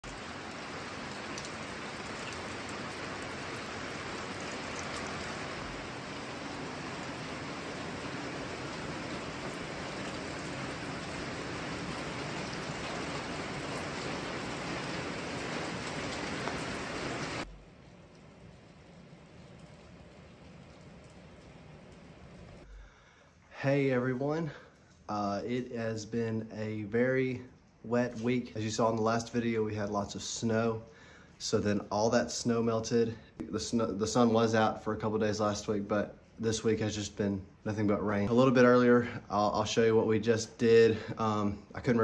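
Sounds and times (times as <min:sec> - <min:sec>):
heavy rain falling: 0:00.0 - 0:22.7.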